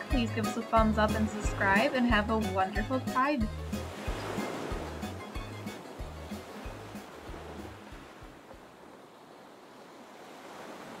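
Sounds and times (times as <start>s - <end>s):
background music: 0.0s - 8.3s
ocean surf washing: 0.0s - 11.0s.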